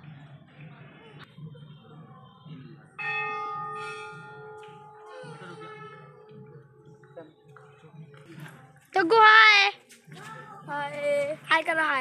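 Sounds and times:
temple bell ringing: 3.0 - 8.1.

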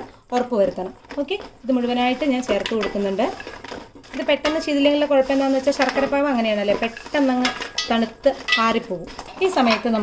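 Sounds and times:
wooden spatula scraping metal pot: 0.4 - 10.0.

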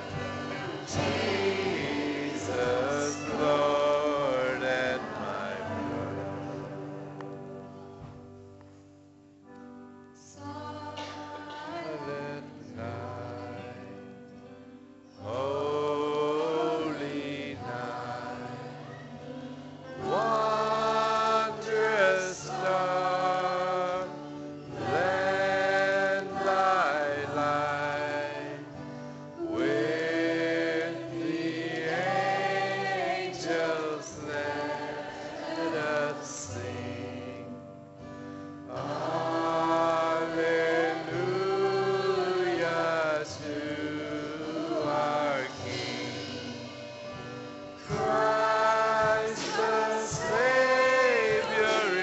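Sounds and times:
person singing worship song: 0.0 - 8.7, 10.2 - 52.0
small band playing: 0.0 - 8.8, 15.3 - 37.4, 38.7 - 52.0.

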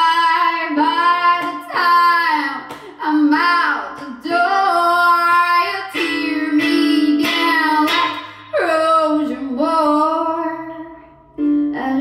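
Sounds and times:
woman singing long notes: 0.0 - 12.0
strummed ukulele: 5.2 - 8.9, 11.4 - 12.0.

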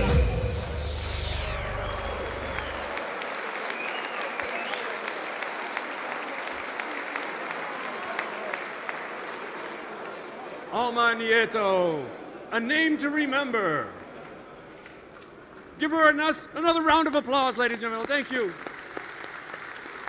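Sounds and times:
audience applauding: 1.2 - 10.7, 17.0 - 20.0.

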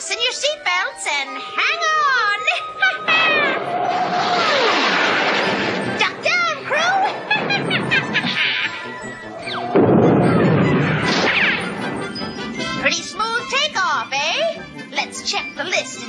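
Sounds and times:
background music: 0.0 - 4.0, 5.2 - 16.0.

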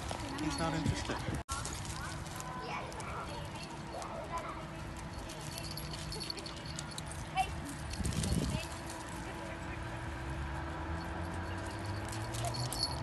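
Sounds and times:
dog footsteps on mulch: 0.0 - 9.4.

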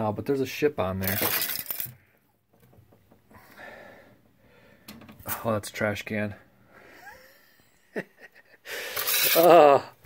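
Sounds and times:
metal shovel scraping glass: 8.9 - 9.5.

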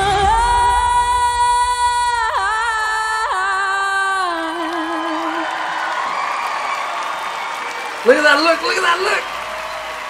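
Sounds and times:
backing music: 0.0 - 3.3
woman singing with vibrato: 0.0 - 6.2
audience applause and cheering: 2.2 - 10.0.

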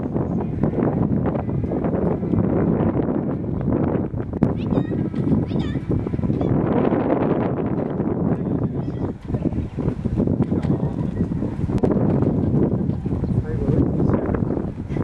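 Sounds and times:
wind buffeting microphone: 0.0 - 15.0
high-pitched animal calls: 4.6 - 5.8.

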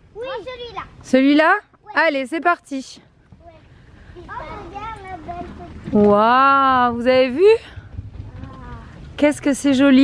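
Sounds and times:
outdoor background noise: 0.0 - 10.0
young children talking: 0.2 - 1.0, 3.4 - 6.0, 8.3 - 9.0.

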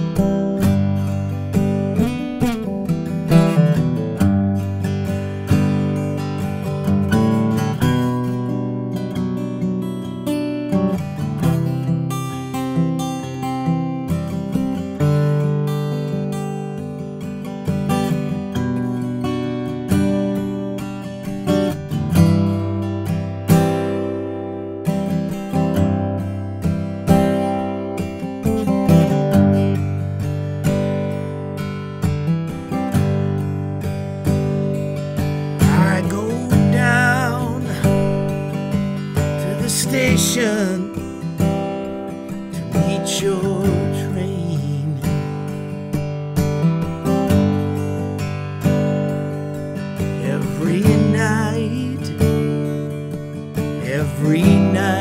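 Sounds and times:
acoustic guitar strummed and picked: 0.0 - 55.0.

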